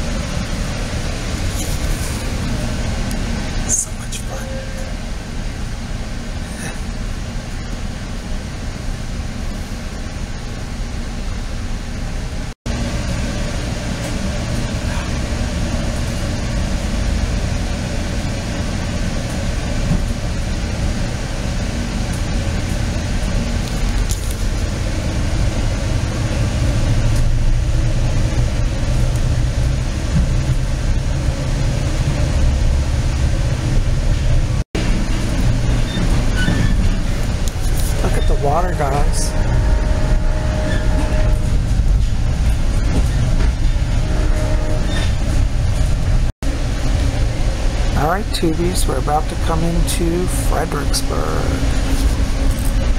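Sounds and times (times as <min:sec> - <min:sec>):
train wheels rumbling on rail: 0:00.0 - 0:52.9.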